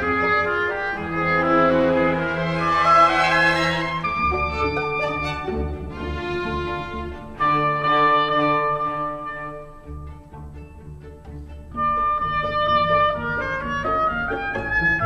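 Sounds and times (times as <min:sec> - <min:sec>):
oboe: 0:00.0 - 0:10.2, 0:11.7 - 0:15.0
strings: 0:00.0 - 0:15.0.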